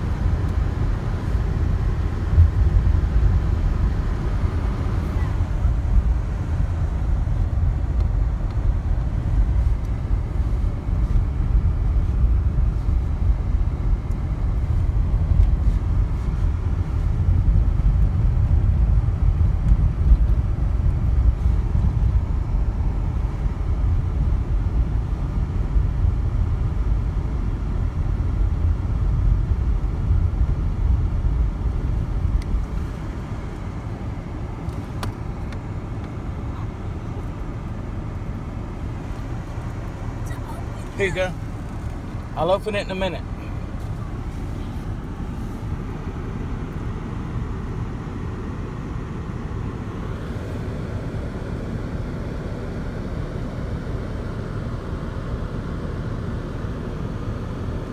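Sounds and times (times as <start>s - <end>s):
car engine rumble: 0.0s - 57.9s
road noise inside car: 0.0s - 57.9s.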